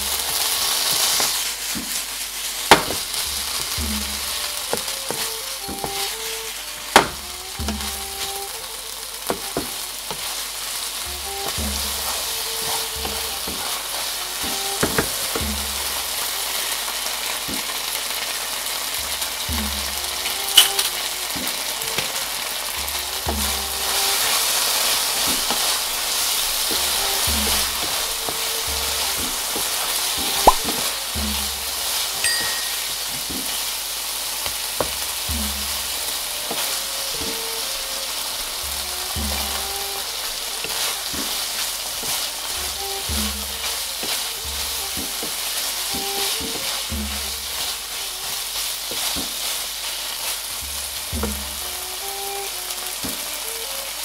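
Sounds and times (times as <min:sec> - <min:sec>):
wooden spatula scraping a pan: 0:00.0 - 0:18.0, 0:18.6 - 0:54.0
meat sizzling in a frying pan: 0:00.0 - 0:54.0.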